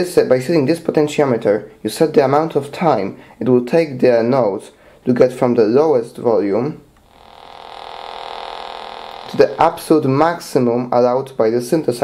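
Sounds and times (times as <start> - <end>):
buzzy synthesizer tone: 7.0 - 10.5.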